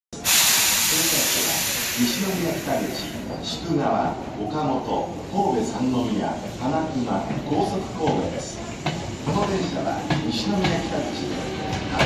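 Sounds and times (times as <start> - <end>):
air brakes hissing: 0.2 - 3.4.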